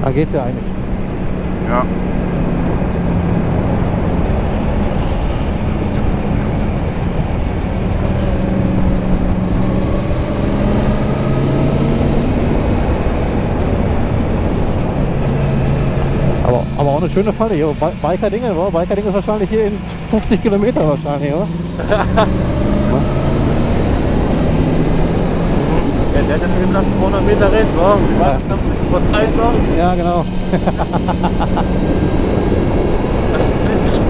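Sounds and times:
wind rush: 0.0 - 34.0.

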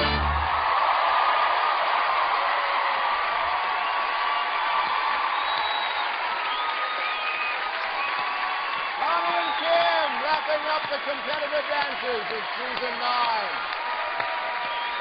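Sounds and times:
audience applauding and cheering: 0.0 - 15.0
whoops: 0.4 - 10.4.

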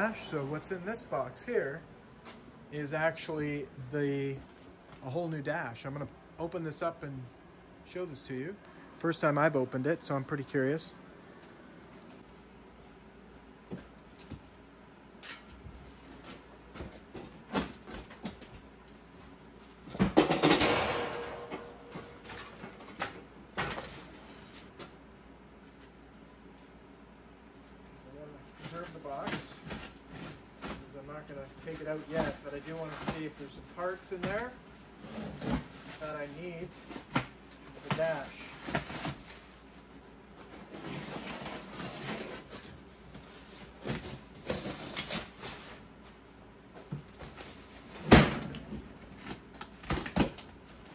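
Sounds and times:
box thumping on metal table: 19.9 - 22.4.

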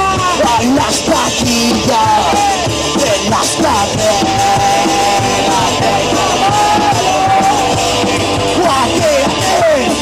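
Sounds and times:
electric guitars: 0.0 - 10.0
singer shouting and singing: 0.0 - 10.0.

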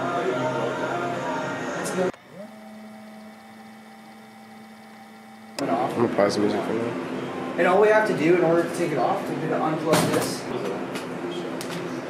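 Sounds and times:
rising electronic hum: 2.1 - 6.0.

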